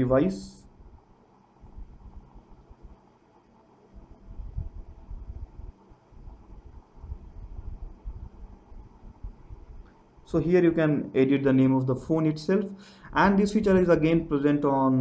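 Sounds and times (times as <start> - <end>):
faint low rumble: 0.0 - 12.2
faint steady hum: 0.0 - 15.0.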